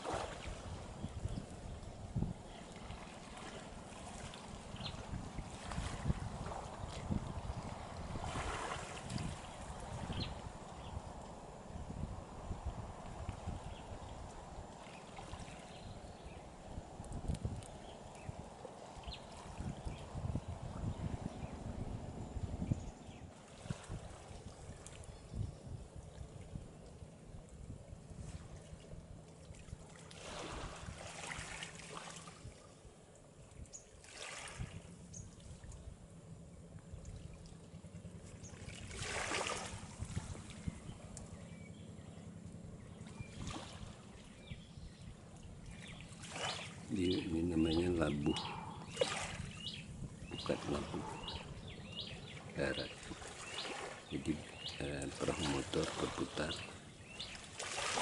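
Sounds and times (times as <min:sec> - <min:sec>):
small waves washing on shore: 0:00.0 - 0:21.0, 0:23.3 - 0:25.2, 0:26.0 - 0:32.9, 0:34.0 - 0:35.7, 0:37.0 - 0:41.2, 0:43.0 - 0:44.4, 0:45.1 - 0:58.0
low uneven rumble: 0:00.0 - 0:58.0.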